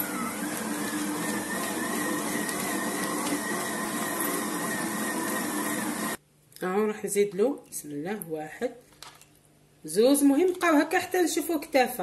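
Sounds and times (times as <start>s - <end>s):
stand mixer motor humming: 0.0s - 6.2s.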